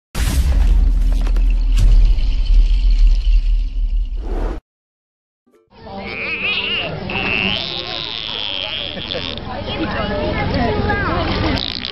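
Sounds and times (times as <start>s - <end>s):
deep bass rumble: 0.2s - 4.6s.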